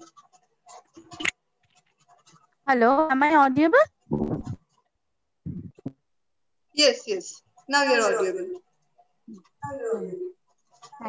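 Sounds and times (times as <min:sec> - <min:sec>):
scratchy microphone rustle: 0:04.1 - 0:04.8.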